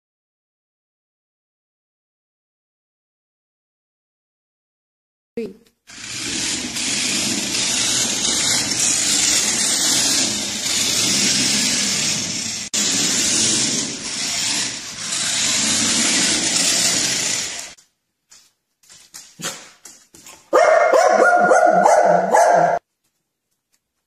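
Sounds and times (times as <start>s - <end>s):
toy car motor whirring: 5.9s - 17.8s.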